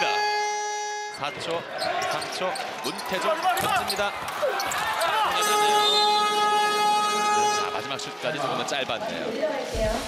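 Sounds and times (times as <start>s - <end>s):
arena horn blaring: 0.0s - 1.2s, 5.4s - 8.2s
court noise: 1.1s - 7.9s.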